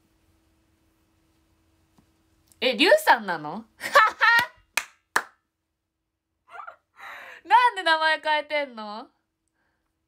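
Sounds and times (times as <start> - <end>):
woman's voice: 2.6 - 3.8, 7.4 - 9.2
sharp hand claps: 4.3 - 5.4.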